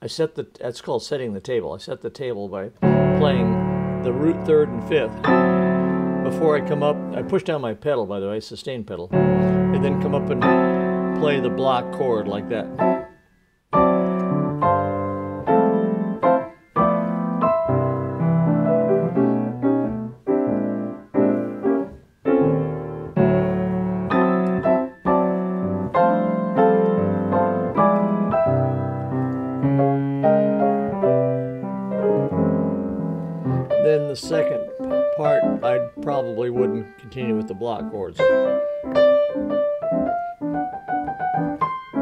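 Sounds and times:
grand piano chords: 2.8 - 7.6, 9.1 - 42.0.

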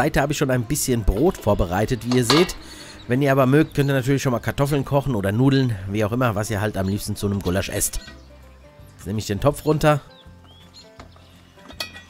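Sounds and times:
faint background music: 0.0 - 12.0
metal clink: 2.0 - 3.0, 11.7 - 12.0.

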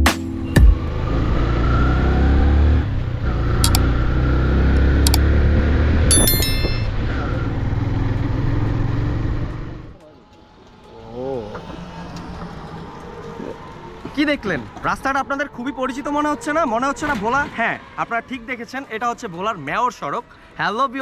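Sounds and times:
sharp clicks: 3.6 - 3.9, 4.7 - 5.2
short stepped chime: 6.1 - 7.1.

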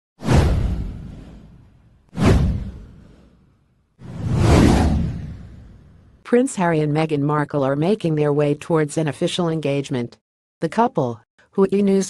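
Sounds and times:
whoosh with deep low rumble: 0.2 - 6.2.

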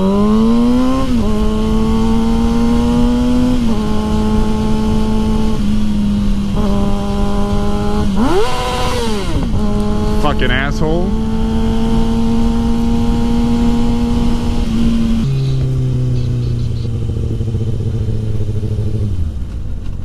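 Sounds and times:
wind noise on microphone: 0.0 - 10.3, 11.0 - 20.0
motorcycle engine accelerating: 0.0 - 20.0.

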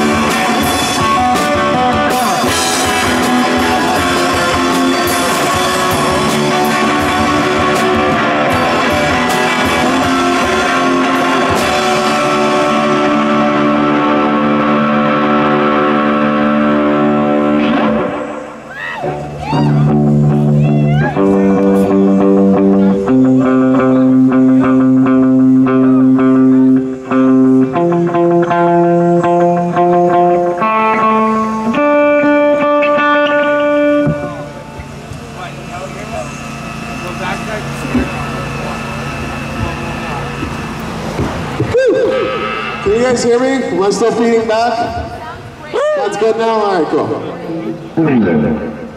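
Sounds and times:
amplifier ringing: 0.0 - 45.3
distorted electric guitar: 0.0 - 48.9.

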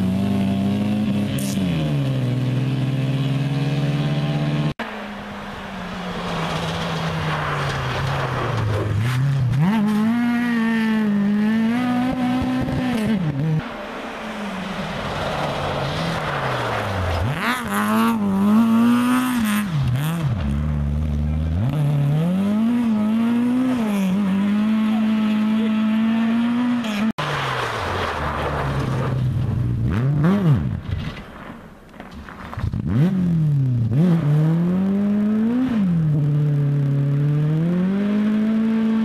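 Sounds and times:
rally car engines revving: 0.0 - 31.2, 32.5 - 39.0.

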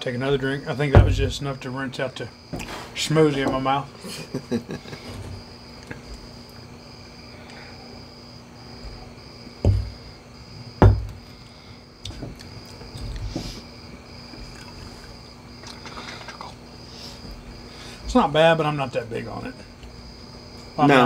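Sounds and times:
low steady hum: 0.0 - 21.0
dull thumps: 0.3 - 1.5, 8.8 - 11.3, 12.0 - 13.7
soft knocks: 0.9 - 1.3, 9.6 - 10.0, 10.8 - 11.2.

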